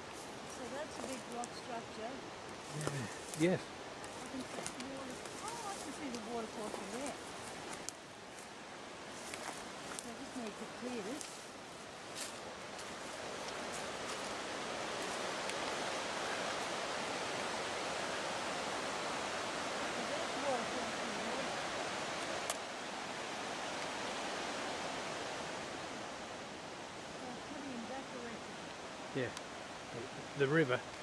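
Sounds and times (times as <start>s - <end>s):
waterfall rushing: 12.4s - 31.0s.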